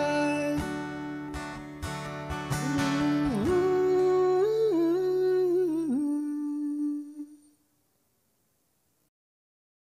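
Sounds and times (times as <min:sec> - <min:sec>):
man humming: 0:02.6 - 0:07.6.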